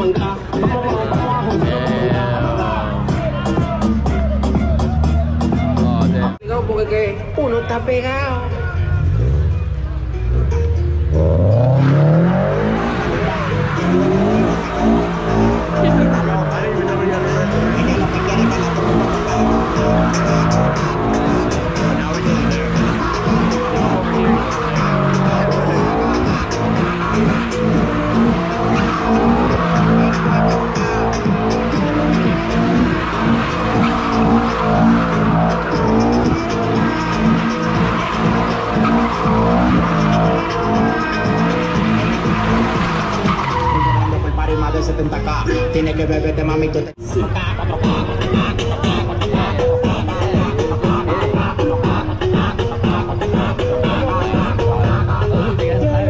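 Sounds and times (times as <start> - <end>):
car engine revving: 0.0 - 56.0
tyres squealing: 11.2 - 56.0.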